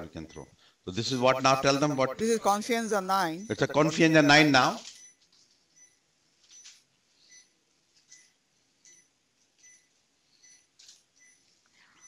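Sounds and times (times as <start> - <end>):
patient monitor pulse beeps: 1.2 - 12.0.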